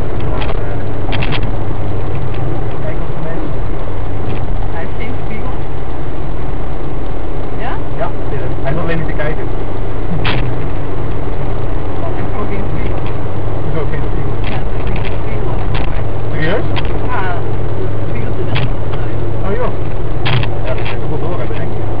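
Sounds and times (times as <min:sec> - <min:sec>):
car engine and tyre drone: 0:00.0 - 0:22.0.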